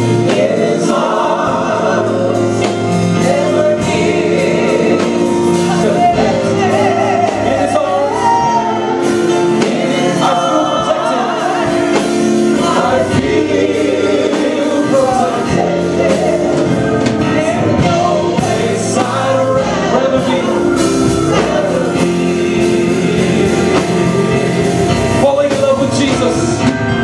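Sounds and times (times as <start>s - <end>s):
group singing gospel: 0.0s - 27.0s
sustained keyboard chords: 0.0s - 27.0s.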